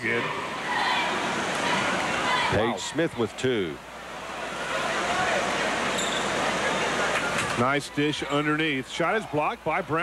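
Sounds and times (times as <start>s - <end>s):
faint crowd voices: 0.0s - 10.0s.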